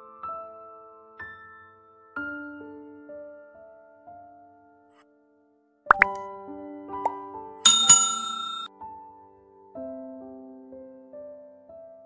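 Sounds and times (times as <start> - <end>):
button click pop: 5.9 - 6.2
rising pop: 5.9 - 6.2
held chime-like musical notes: 7.7 - 8.7.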